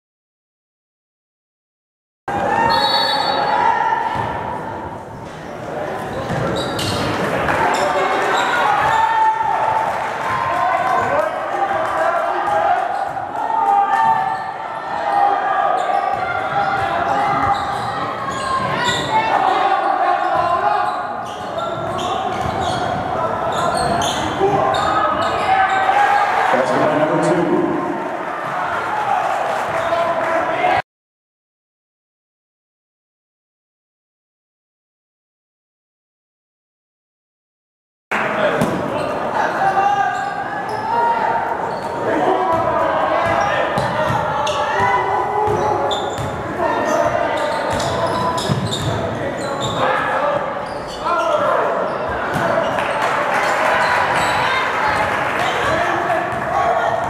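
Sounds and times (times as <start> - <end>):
voices in a big hall: 2.3 - 30.8, 38.1 - 57.0.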